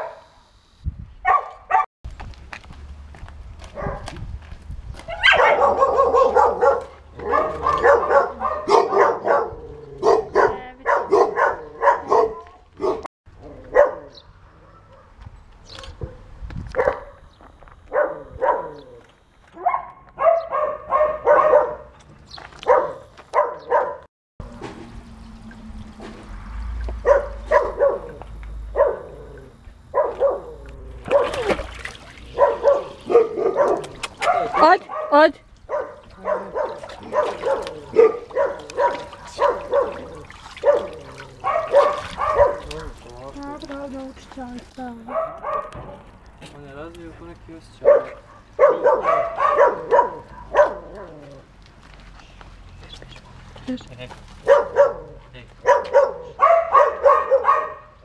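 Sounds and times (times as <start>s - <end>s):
dog sounds: 3.7s - 4.2s, 5.0s - 17.3s, 17.9s - 21.9s, 22.6s - 24.1s, 26.9s - 46.0s, 47.8s - 51.5s, 52.1s - 58.0s
person talking: 10.4s - 11.1s, 34.4s - 35.4s, 42.7s - 45.2s.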